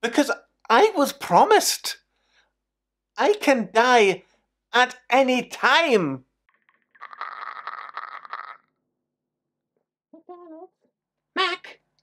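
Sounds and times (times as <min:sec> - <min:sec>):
person laughing loudly: 0:07.0 - 0:08.6.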